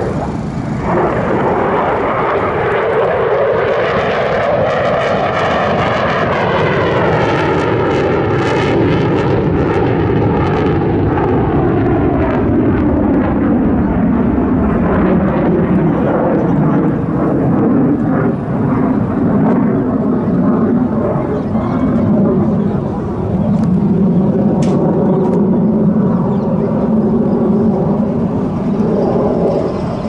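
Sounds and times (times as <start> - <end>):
jet flying past overhead: 0.0 - 30.0.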